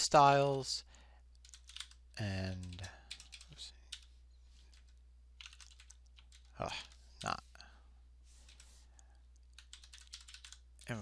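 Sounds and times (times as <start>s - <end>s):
low steady hum: 0.0s - 11.0s
computer keyboard keystrokes: 1.4s - 4.1s, 4.7s - 7.3s, 9.5s - 11.0s.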